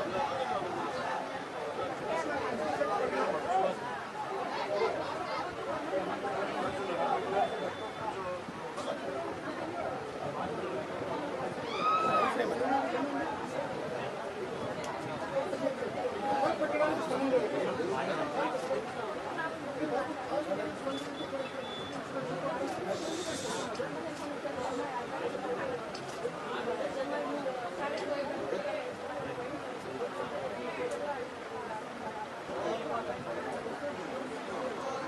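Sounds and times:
murmur of chatter: 0.0 - 35.0.

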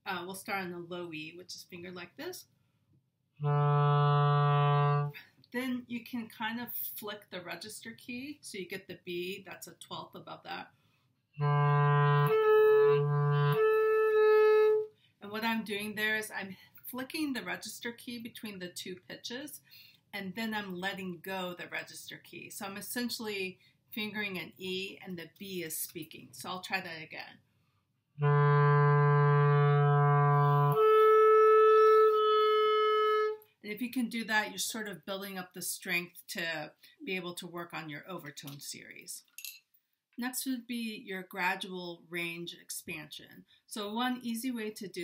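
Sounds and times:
clarinet playing notes: 3.4 - 5.2, 11.4 - 14.9, 28.2 - 33.4.

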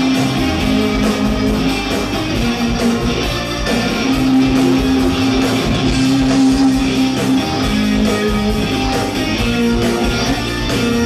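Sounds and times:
live rock music led by guitar: 0.0 - 11.0.

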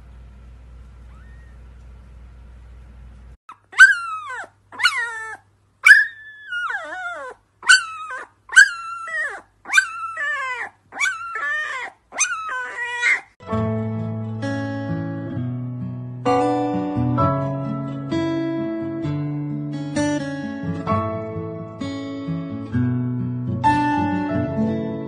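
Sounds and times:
puppy howling: 1.1 - 1.6, 3.5 - 13.4
strummed guitar music: 13.4 - 25.0.

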